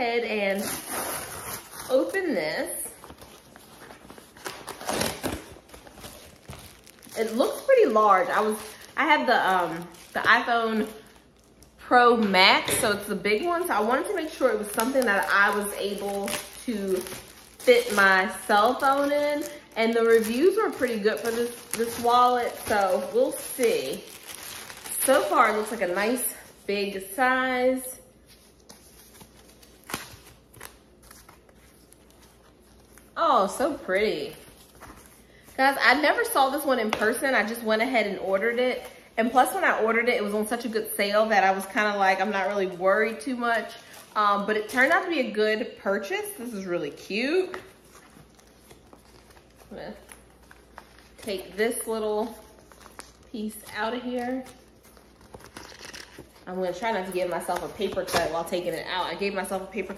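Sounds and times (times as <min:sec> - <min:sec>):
packaging rustling and crinkling: 0:00.4 - 0:11.8, 0:13.4 - 0:27.2, 0:28.2 - 0:37.6, 0:47.0 - 0:59.9.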